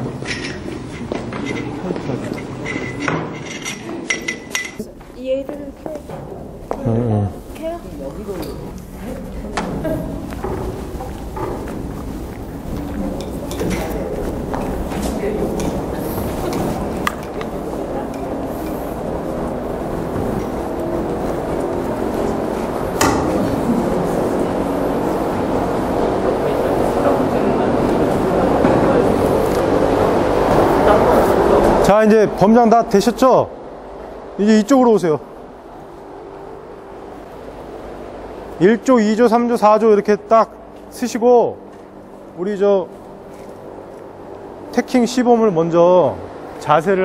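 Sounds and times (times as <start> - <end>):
murmur of overlapping voices: 0.0 - 47.0.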